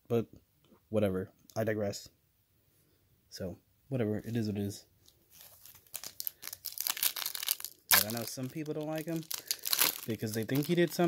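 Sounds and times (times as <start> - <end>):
foil wrapper tearing and crinkling: 5.3 - 11.0.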